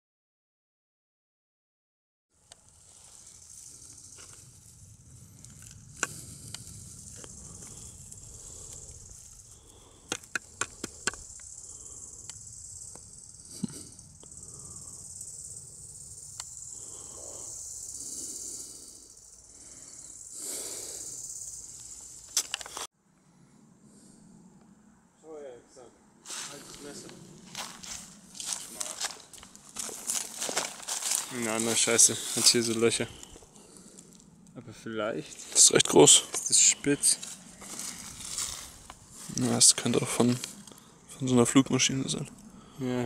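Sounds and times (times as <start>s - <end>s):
steady high-pitched hiss: 2.4s - 43.0s.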